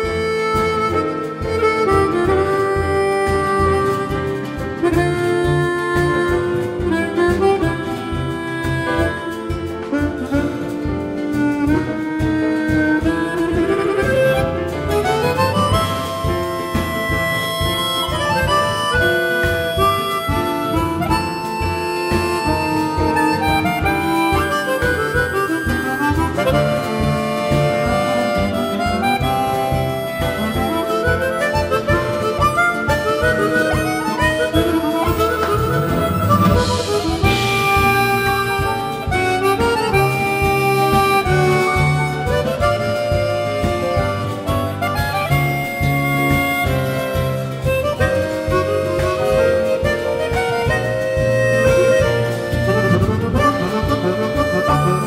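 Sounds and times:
acoustic guitar: 0.0 - 55.0
double bass: 0.0 - 55.0
drums: 0.0 - 55.0
harmonicas playing tango melody: 0.0 - 55.0
piano: 0.0 - 55.0.

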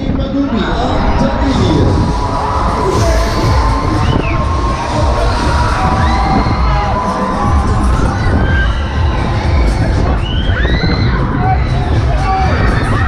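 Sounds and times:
steady low rumble: 0.0 - 13.0
riders screaming and shouting: 0.5 - 13.0.

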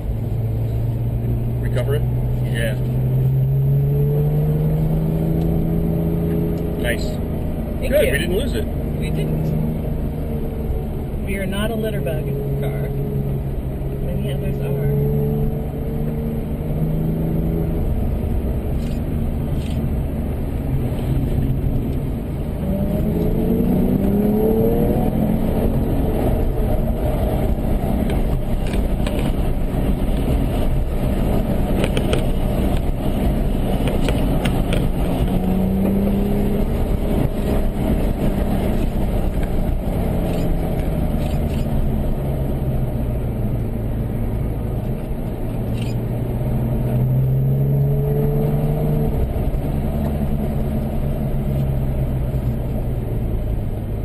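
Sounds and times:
car engine from inside cabin: 0.0 - 54.0.

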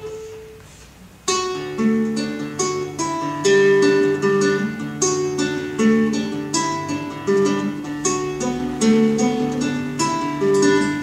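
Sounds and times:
acoustic guitar picked melody: 0.0 - 11.0.

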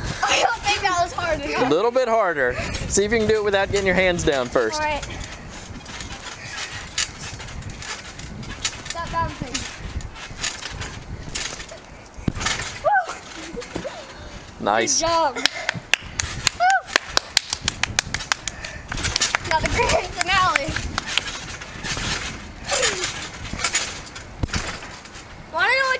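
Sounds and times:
trampoline thumps: 0.0 - 25.9
trampoline frame clicks: 2.7 - 14.6, 15.2 - 25.9
thumps on trampoline mat: 12.3 - 14.0, 21.9 - 25.0.

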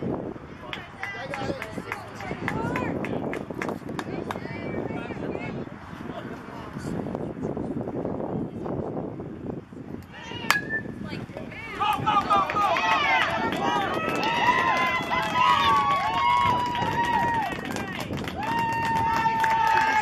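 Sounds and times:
spectators shouting and cheering: 10.1 - 20.0
bat hitting baseball: 10.4 - 11.4.

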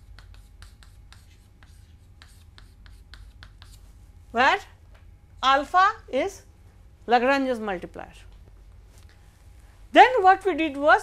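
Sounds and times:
chalk scratching on blackboard: 0.0 - 3.9
low steady hum: 0.0 - 11.0.

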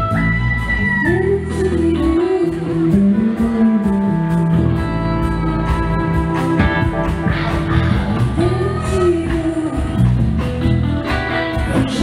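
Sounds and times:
bass: 0.0 - 12.0
drums: 0.0 - 12.0.

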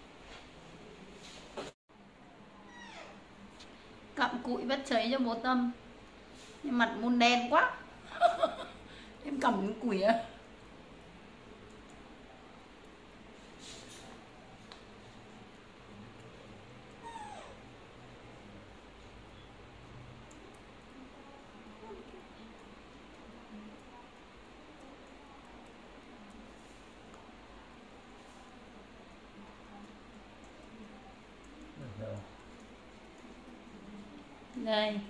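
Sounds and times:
baby monkey whimpering call: 2.7 - 3.2, 17.0 - 17.6.

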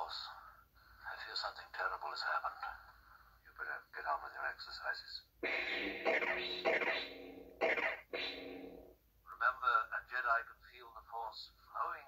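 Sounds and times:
steady buzzing hum: 5.4 - 8.9.

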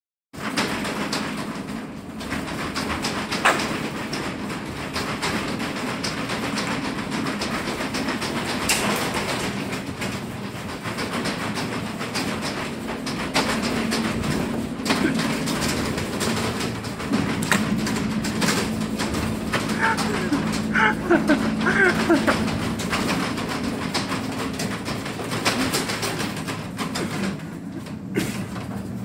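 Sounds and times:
rattling clicks and knocks: 0.4 - 29.0
truck rumble: 0.4 - 29.0.

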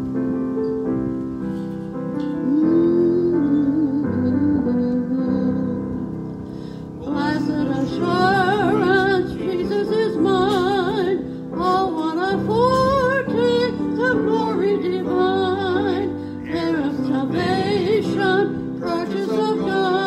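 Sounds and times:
electronic keyboard playing: 0.0 - 20.0
woman singing through microphone: 2.2 - 6.3, 6.9 - 20.0.

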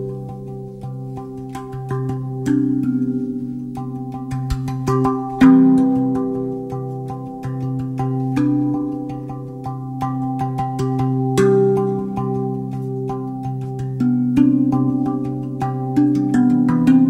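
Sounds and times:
steel tongue drum notes: 0.0 - 17.0.

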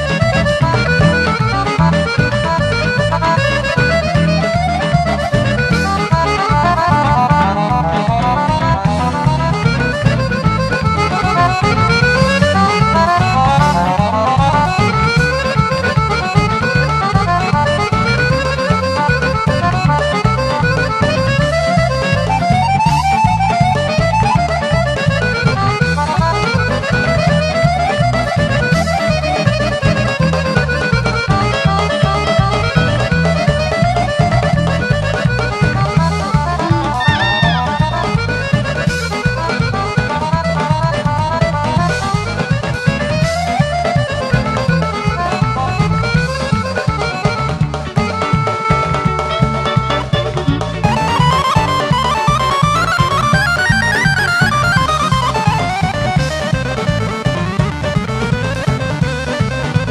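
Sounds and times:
folk band playing fast music: 0.0 - 59.9.

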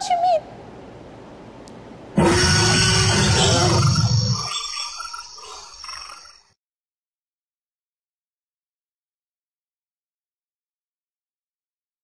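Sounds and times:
dinosaur roar: 2.2 - 4.6.

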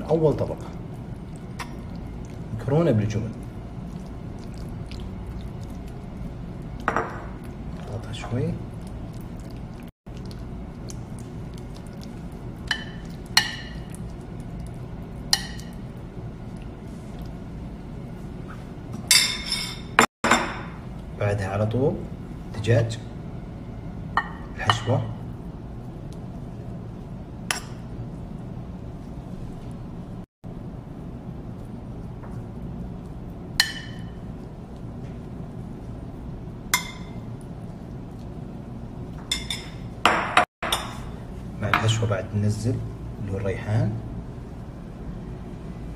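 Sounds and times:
steady low hum: 0.0 - 45.9.

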